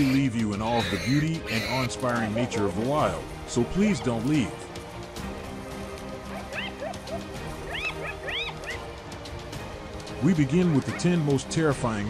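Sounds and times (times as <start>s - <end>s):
hyenas squealing: 0.0s - 2.4s, 6.3s - 8.9s
background music: 0.0s - 12.0s.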